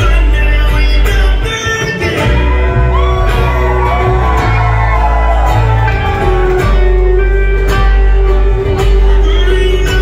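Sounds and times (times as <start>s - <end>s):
country band playing: 0.0s - 10.0s.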